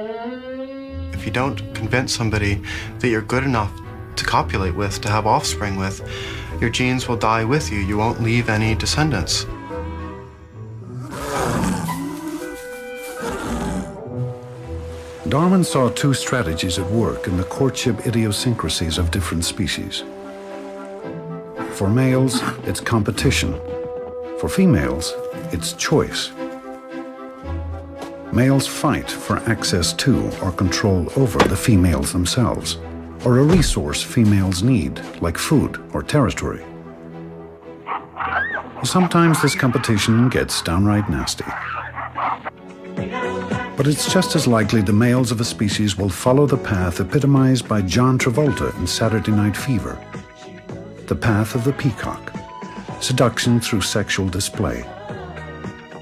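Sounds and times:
music: 0.0 - 56.0
leopards snarling and growling: 10.6 - 14.3, 22.2 - 22.7, 37.8 - 42.6
baboon crying: 37.9 - 40.4, 41.5 - 42.5.

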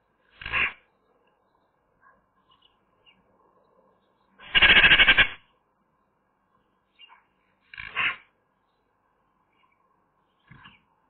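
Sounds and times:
magpie chattering call: 4.4 - 5.4.

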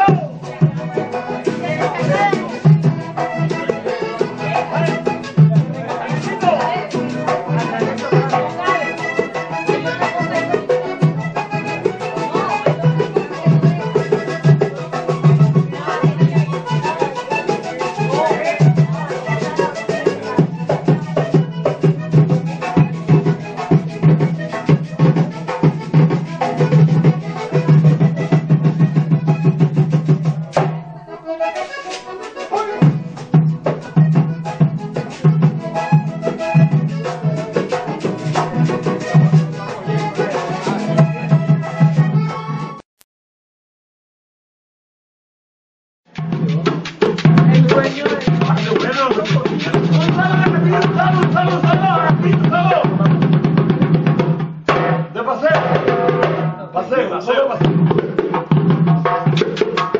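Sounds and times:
men singing: 0.0 - 9.0, 12.0 - 21.2, 37.0 - 41.3, 47.3 - 53.2
hand drum beating: 0.0 - 42.7, 46.1 - 56.6, 57.6 - 59.9
button accordion playing: 0.0 - 42.8, 47.4 - 53.1
quick percussion rhythm: 0.0 - 42.8, 46.1 - 56.6, 57.6 - 59.9.

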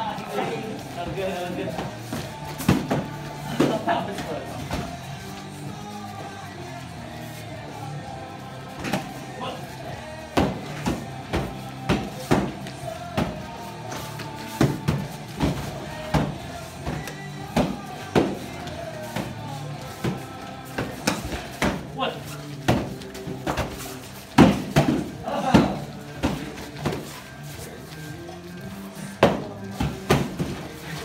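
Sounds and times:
background music: 0.0 - 31.0
weapons striking shields and pads: 1.8 - 3.9, 10.3 - 21.9, 22.6 - 27.1.

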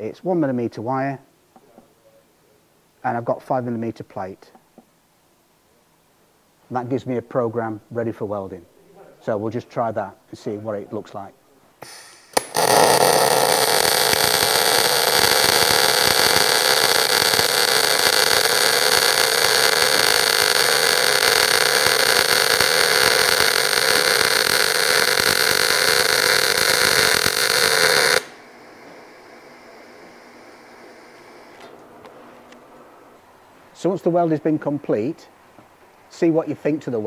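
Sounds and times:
welding arc noise: 11.8 - 31.8.

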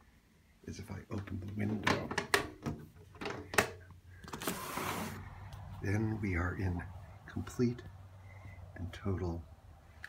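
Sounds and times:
window sliding open: 4.4 - 5.6.

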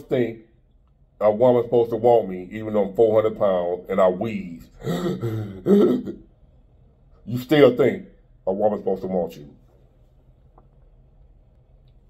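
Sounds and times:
man laughing low: 4.7 - 6.2.

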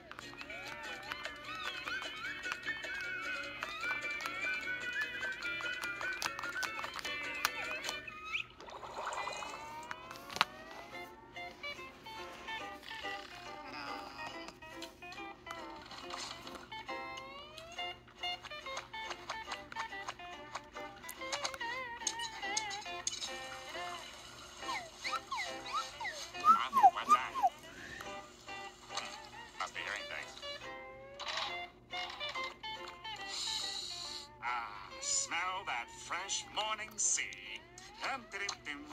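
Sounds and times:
cartoon soundtrack music: 0.0 - 38.9.

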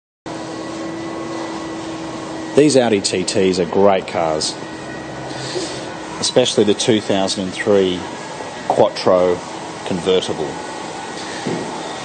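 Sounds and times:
constant tones: 0.3 - 12.0
steady mechanical hum: 0.3 - 12.0.

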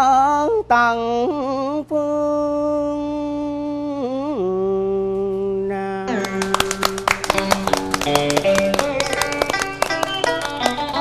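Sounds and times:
person singing: 0.0 - 9.7
plucked strings fast run: 6.1 - 11.0.

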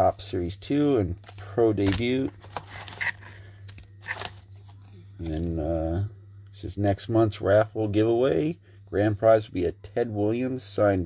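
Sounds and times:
paper wrappers crinkling: 1.0 - 5.6.

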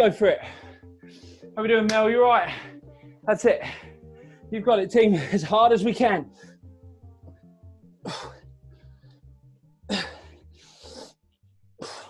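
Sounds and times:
workout music with pulsing bass: 0.0 - 9.2
heavy forceful breaths: 9.9 - 11.2.

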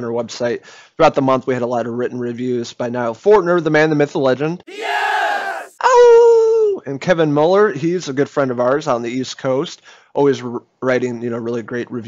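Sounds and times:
crowd shouting: 4.7 - 5.8
person yelling: 4.7 - 5.8.

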